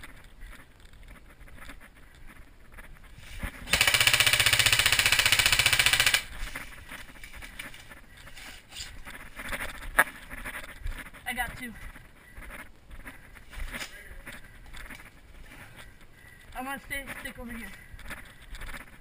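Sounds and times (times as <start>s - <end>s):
quiet footsteps: 0.0s - 4.2s, 6.0s - 19.0s
airsoft gun full-auto burst: 3.6s - 6.4s.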